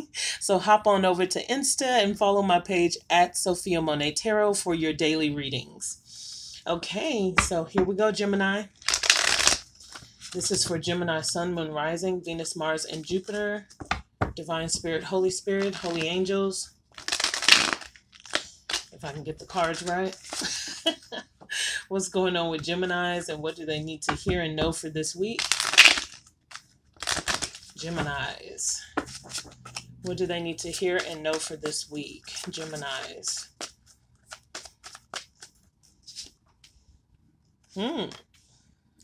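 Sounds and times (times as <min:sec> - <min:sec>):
cards being shuffled: 0:08.8 - 0:10.8, 0:15.5 - 0:16.2, 0:17.0 - 0:20.9, 0:25.4 - 0:28.3, 0:29.0 - 0:36.7.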